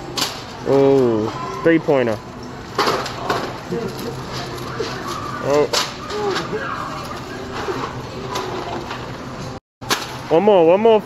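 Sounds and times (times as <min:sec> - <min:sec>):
clatter of groceries and carts: 0:00.0 - 0:10.5.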